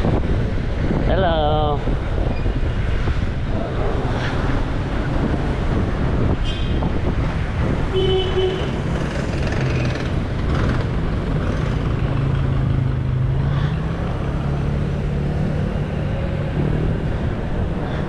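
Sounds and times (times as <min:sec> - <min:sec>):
steady engine hum: 0:00.0 - 0:18.0
vehicles passing: 0:00.0 - 0:18.0.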